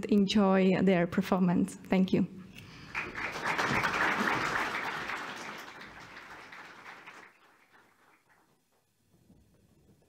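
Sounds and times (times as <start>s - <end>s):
audience applauding: 2.8s - 8.6s.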